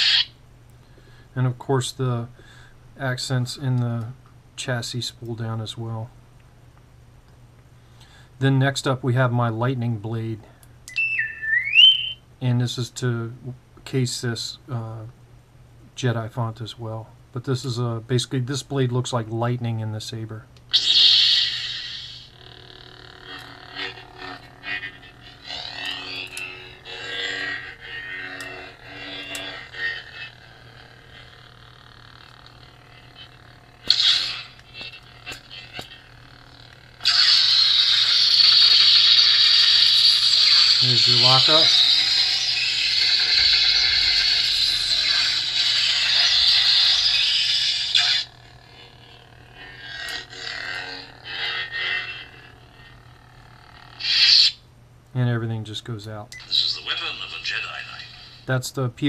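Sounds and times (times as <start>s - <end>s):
lightsaber electronic hum: 0.0s - 0.4s, 10.9s - 12.8s, 20.2s - 54.7s, 56.3s - 58.8s
loud crackling buzz: 20.7s - 54.2s.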